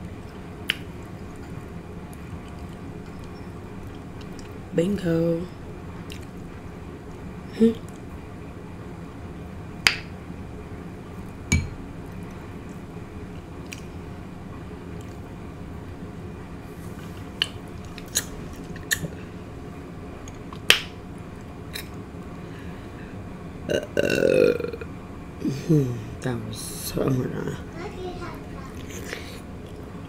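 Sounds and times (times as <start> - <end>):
chewing crunches and mouth clicks: 0.2 - 4.6, 6.0 - 6.5, 12.1 - 14.0, 14.9 - 15.3, 17.3 - 19.2
throaty vocal sound: 23.7 - 25.8.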